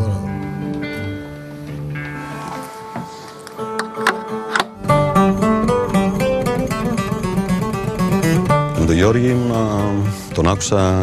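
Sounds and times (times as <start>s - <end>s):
strummed accompaniment with bass: 0.0s - 11.0s
bouzouki playing: 3.5s - 11.0s.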